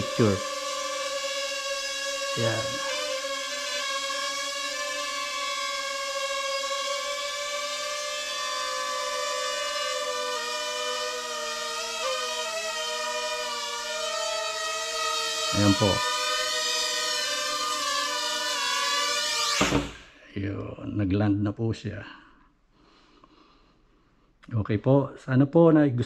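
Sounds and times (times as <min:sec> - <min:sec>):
drone propellers whining: 0:00.0 - 0:20.2.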